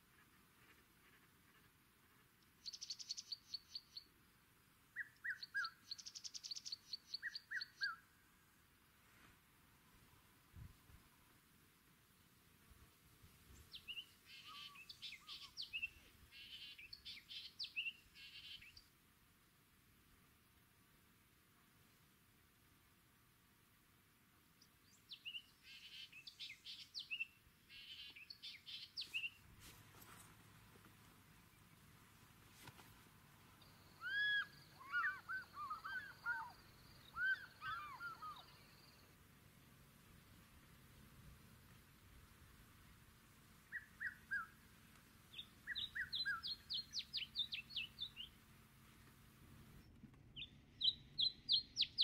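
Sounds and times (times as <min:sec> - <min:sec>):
songbird singing: 0:00.0 - 0:08.6, 0:12.0 - 0:19.0, 0:24.4 - 0:52.0
birds calling: 0:13.7 - 0:18.8, 0:32.6 - 0:39.1, 0:43.6 - 0:44.6, 0:45.3 - 0:48.4.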